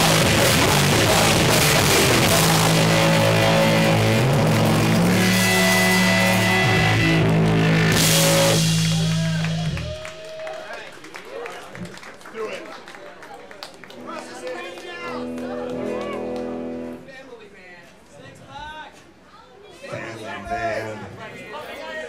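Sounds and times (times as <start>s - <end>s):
punk rock band playing: 0.0s - 9.9s, 15.0s - 17.0s.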